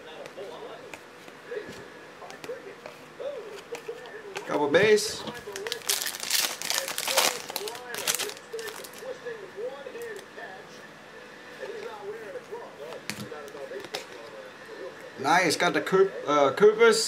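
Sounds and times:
cards being handled: 0.1s - 9.1s
plastic wrapper tearing: 5.3s - 9.1s.

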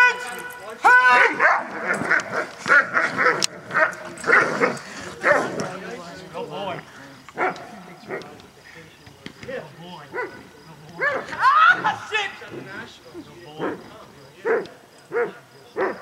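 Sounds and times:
man shouting: 0.0s - 1.6s, 11.0s - 12.5s
dog barking: 1.2s - 5.6s, 7.4s - 8.2s, 10.1s - 10.4s, 11.0s - 11.3s, 14.4s - 16.0s.

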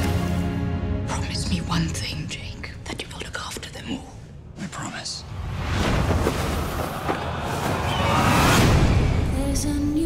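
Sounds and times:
low dark trailer music: 0.0s - 4.6s
person whispering: 2.0s - 5.2s.

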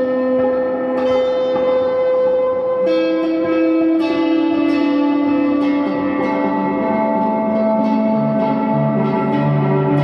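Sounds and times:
guitar ringing notes: 0.0s - 10.0s.

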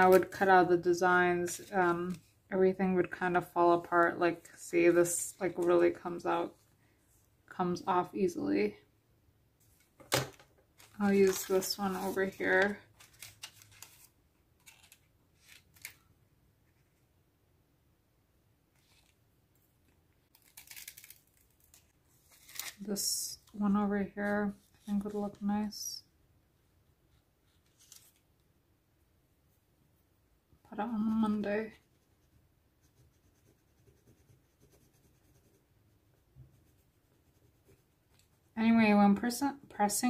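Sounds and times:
plastic sheets crinkling: 10.8s - 16.0s, 20.3s - 23.6s
scratchy rubbing on paper: 31.7s - 38.6s.

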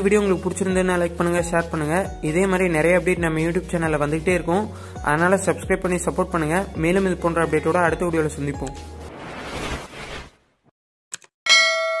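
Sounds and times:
bright bell ding: 11.5s - 12.0s.

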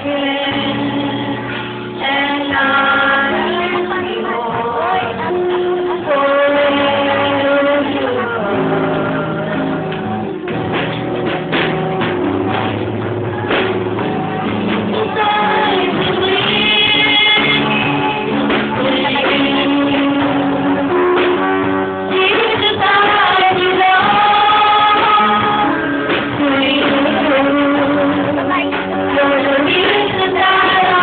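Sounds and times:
gospel singing: 0.0s - 10.5s, 14.4s - 31.0s
band playing sustained chords: 0.0s - 31.0s
strummed guitar: 0.0s - 31.0s.

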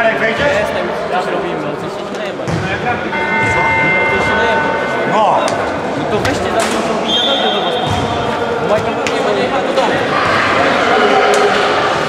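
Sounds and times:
players' voices: 0.0s - 12.0s
steady horn-like tone: 3.1s - 6.0s
higher steady tone: 3.1s - 6.2s.

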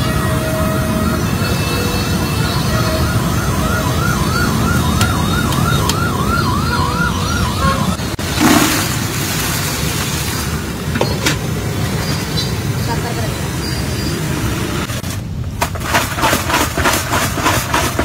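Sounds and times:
street rumble: 0.0s - 18.0s
siren yelping: 0.1s - 8.0s
loud rush of noise: 8.0s - 16.2s.

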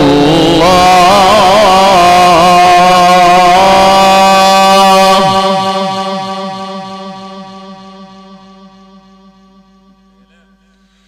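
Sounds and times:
man reciting over loudspeakers: 0.0s - 8.3s, 10.2s - 11.0s.

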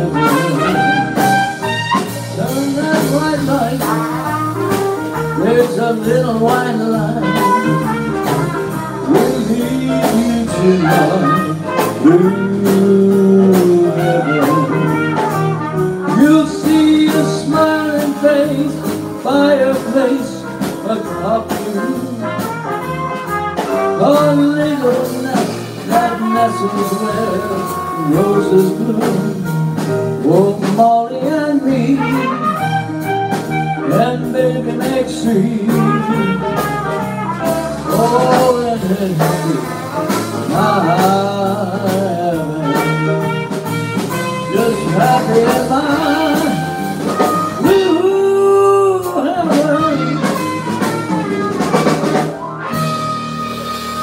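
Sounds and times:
drum kit: 0.0s - 54.0s
electric bass: 0.0s - 54.0s
grand piano: 0.0s - 54.0s
trumpet melody: 0.0s - 54.0s.

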